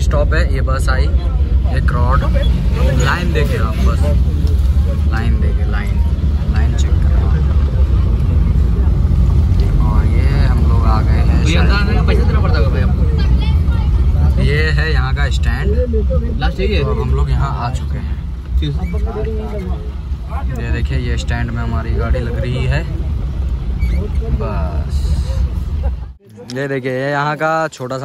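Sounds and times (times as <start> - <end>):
minibus engine rumble: 0.0 - 28.0
passengers talking: 0.0 - 28.0.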